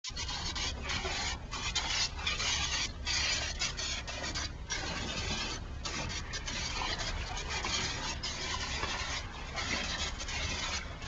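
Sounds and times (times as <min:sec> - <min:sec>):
hose water spraying into pool: 0:00.1 - 0:11.0.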